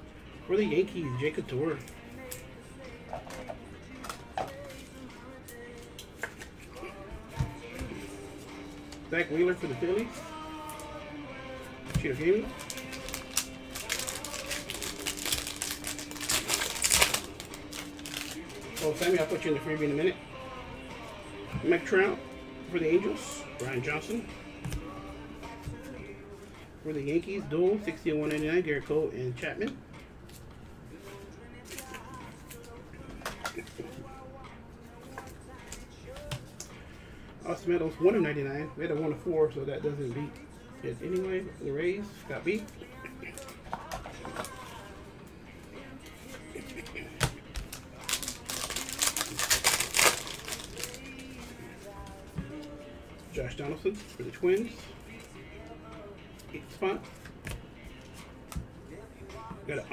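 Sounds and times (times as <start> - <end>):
foil wrapping crinkling: 12.0 - 19.5, 46.6 - 52.0.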